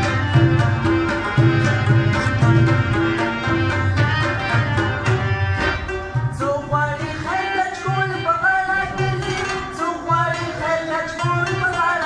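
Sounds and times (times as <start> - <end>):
harmonium playing folk melody: 0.0 - 12.0.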